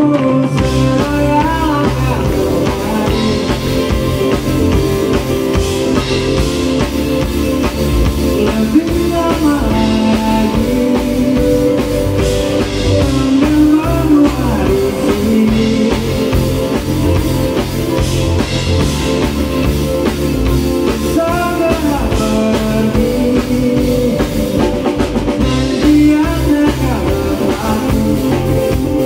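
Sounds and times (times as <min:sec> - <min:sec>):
live band playing: 0:00.0 - 0:29.0
sliding melody line: 0:00.4 - 0:29.0.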